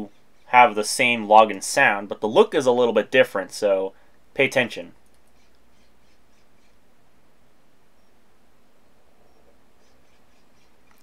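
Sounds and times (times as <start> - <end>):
faint bird chirps: 0.0 - 0.6, 5.2 - 6.8, 7.9 - 8.3, 9.0 - 11.0
room background hiss: 0.0 - 11.0.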